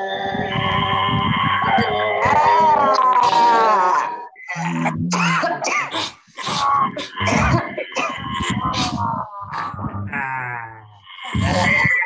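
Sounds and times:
voiced groans: 0:00.0 - 0:12.0
forceful breathy exhalations: 0:05.8 - 0:07.3, 0:08.6 - 0:10.2.

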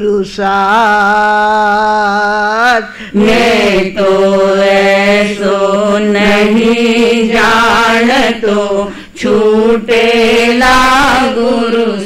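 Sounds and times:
elderly woman singing devotional song: 0:00.0 - 0:12.0.

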